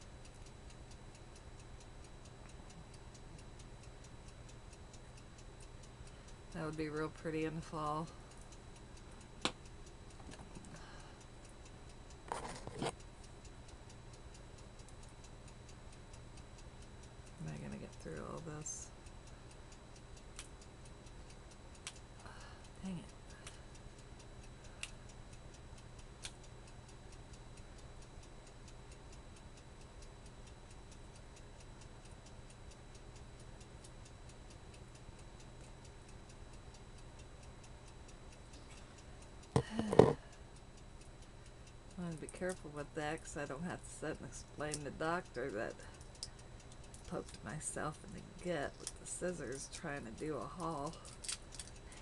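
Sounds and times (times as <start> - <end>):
clock ticking: 0.0 - 52.0.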